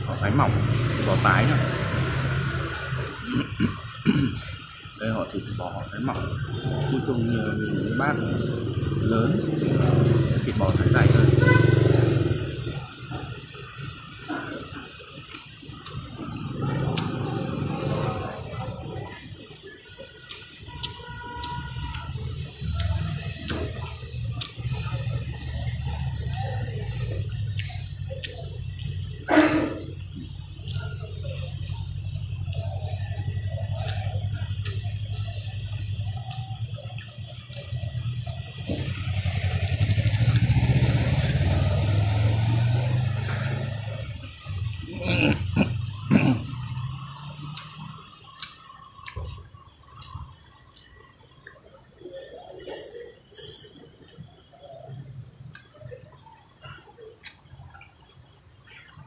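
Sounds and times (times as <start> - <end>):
street traffic engine noise: 0.0 - 59.0.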